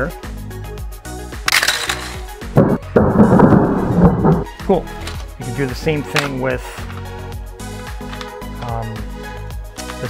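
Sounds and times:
background music: 0:00.0 - 0:10.0
spring launcher snapping: 0:01.4 - 0:05.4.

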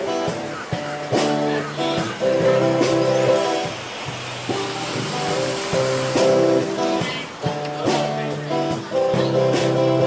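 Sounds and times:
strummed guitar chords: 0:00.0 - 0:10.0.

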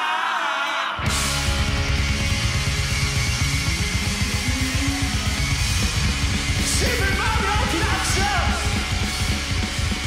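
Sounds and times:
rock band playing: 0:01.0 - 0:10.0.

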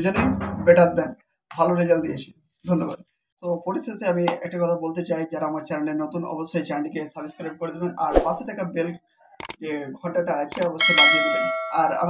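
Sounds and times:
man talking: 0:00.0 - 0:09.0, 0:09.6 - 0:12.0
bell-like chime: 0:10.8 - 0:11.9.

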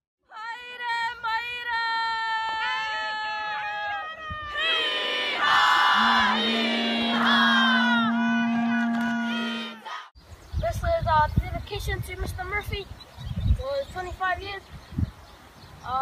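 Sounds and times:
group chanting and shouting: 0:04.5 - 0:10.1
high voice singing long notes: 0:05.7 - 0:10.0.

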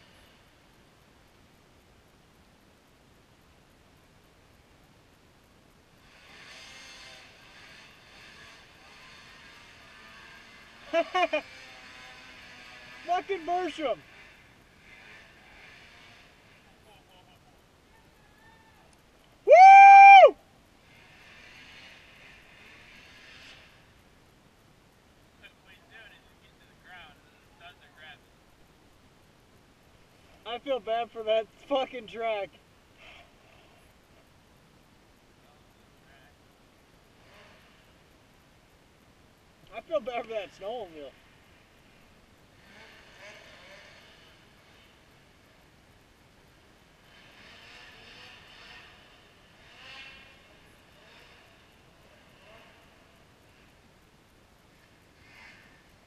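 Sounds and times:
distant snowmobile engine: 0:00.0 - 0:56.0.

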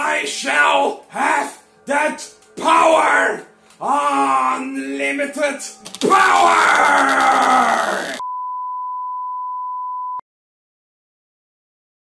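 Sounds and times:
steady pure beep: 0:08.2 - 0:10.2.

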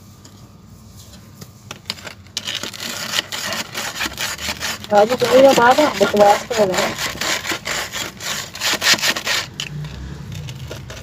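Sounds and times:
hand tool scraping dry soil: 0:01.9 - 0:11.0.

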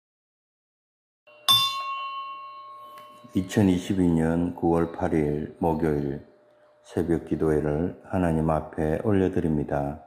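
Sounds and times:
bell ringing: 0:01.3 - 0:07.4.

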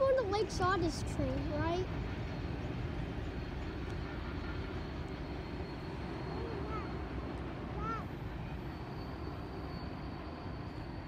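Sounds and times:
train cars rolling on track: 0:00.0 - 0:11.0.

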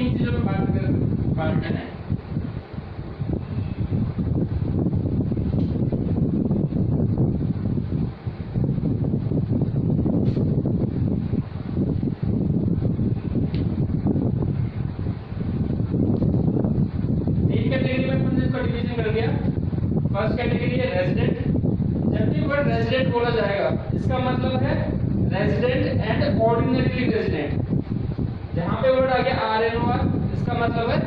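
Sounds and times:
wind rumble on microphone: 0:00.0 - 0:31.0.

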